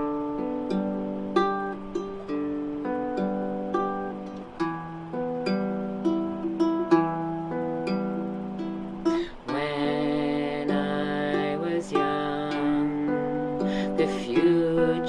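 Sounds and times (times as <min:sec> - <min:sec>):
baritone ukulele plucked chords: 0:00.0 - 0:15.0.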